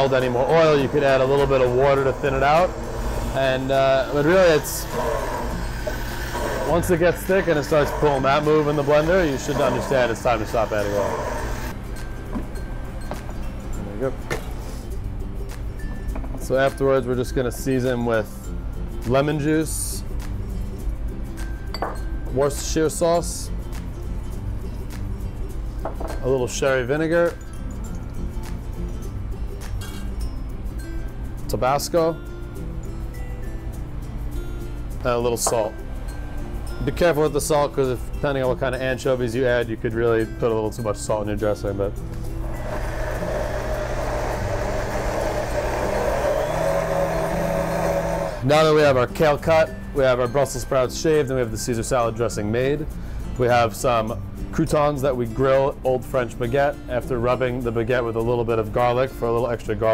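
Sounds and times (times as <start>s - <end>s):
background music: 0.0s - 59.9s
blender motor running: 2.6s - 11.7s, 42.4s - 48.5s.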